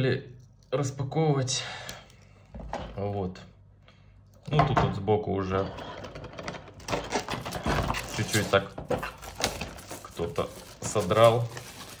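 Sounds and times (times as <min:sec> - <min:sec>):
plastic shrink wrap crinkling: 0:06.7 - 0:12.0.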